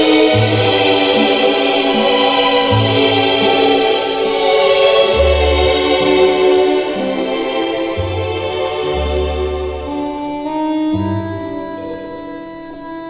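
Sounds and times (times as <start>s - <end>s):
string orchestra chords: 0.0s - 13.0s.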